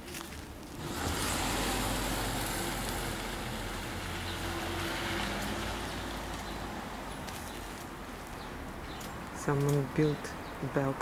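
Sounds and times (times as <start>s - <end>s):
vehicle driving past: 0.8s - 7.2s.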